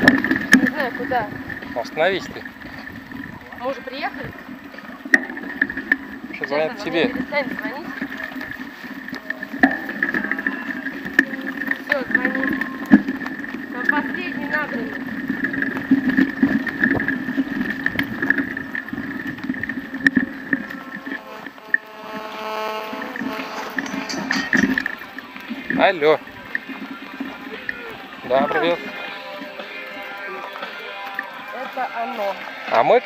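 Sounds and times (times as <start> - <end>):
bike rattling and knocking: 0.0 - 21.6, 23.2 - 28.8
bike tyres rolling on dirt: 0.0 - 33.0
steady hum: 19.5 - 24.9.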